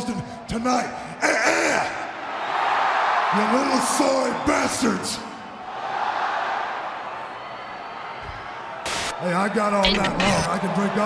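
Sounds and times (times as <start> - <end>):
arena crowd cheering and chatter: 1.2 - 11.0
tv static hiss: 8.9 - 9.1.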